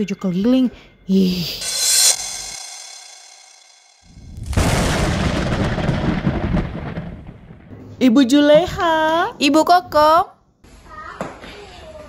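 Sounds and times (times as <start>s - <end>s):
thunder-like boom: 1.6s - 7.7s.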